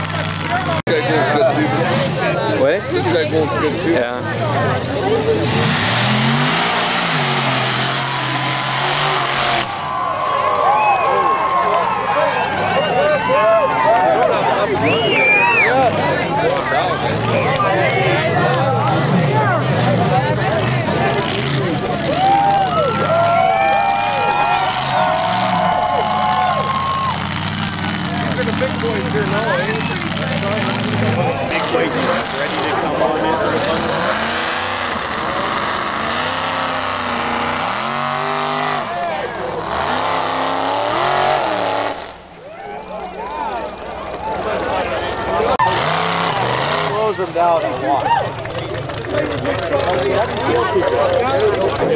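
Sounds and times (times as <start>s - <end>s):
spectators talking: 0.0s - 51.9s
truck engines revving: 0.0s - 51.9s.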